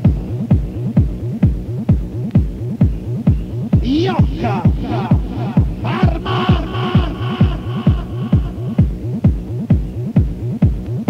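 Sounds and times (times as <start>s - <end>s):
bassline: 0.0s - 11.0s
kick drum: 0.0s - 11.0s.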